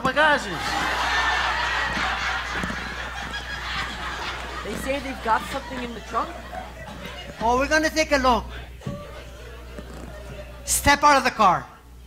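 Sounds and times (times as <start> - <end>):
audience laughing: 0.4 - 7.9, 8.6 - 10.7.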